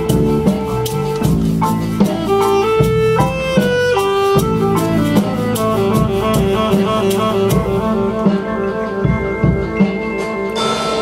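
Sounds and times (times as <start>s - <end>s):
drum and percussion strikes: 0.0s - 11.0s
marching band wind melody: 0.0s - 11.0s.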